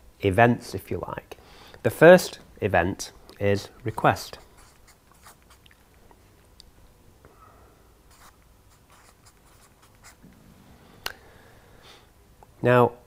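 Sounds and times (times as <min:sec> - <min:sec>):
marker pen scratching on paper: 0:04.1 - 0:05.7, 0:08.1 - 0:10.2.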